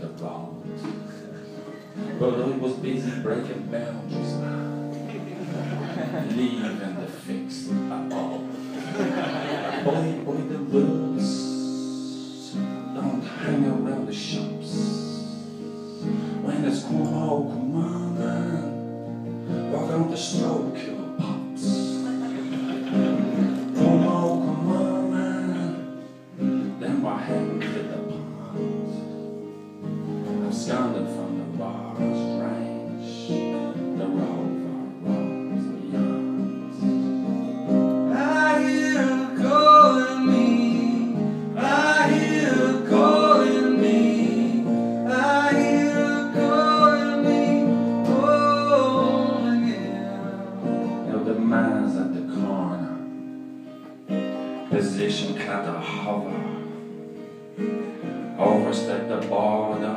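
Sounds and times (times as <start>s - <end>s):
acoustic guitar strumming: 0.0s - 59.9s
person singing: 9.7s - 18.8s, 19.6s - 29.1s, 30.3s - 56.8s.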